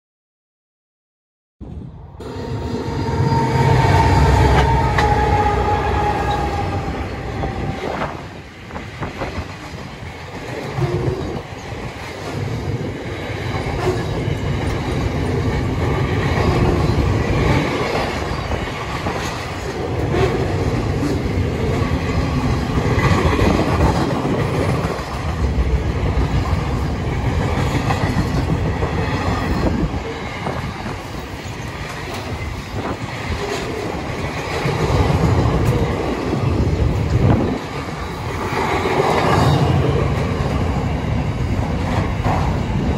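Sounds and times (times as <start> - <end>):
diesel locomotives passing: 1.7 - 42.9
train wheels rumbling on rails: 1.7 - 42.9.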